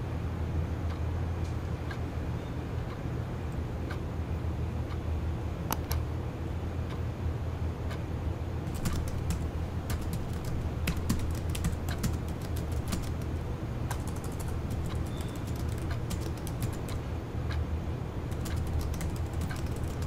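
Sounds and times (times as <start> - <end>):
steady low hum: 0.0 - 20.0
computer keyboard typing: 8.6 - 17.1, 18.3 - 20.0.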